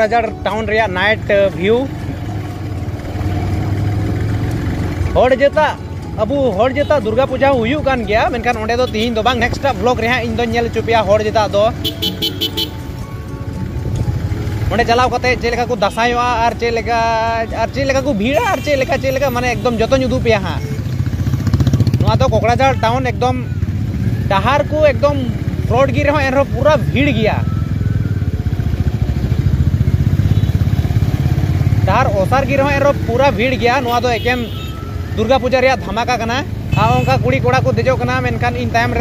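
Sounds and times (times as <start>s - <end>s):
motorcycle engine rumble: 0.0s - 39.0s
road noise: 0.0s - 39.0s.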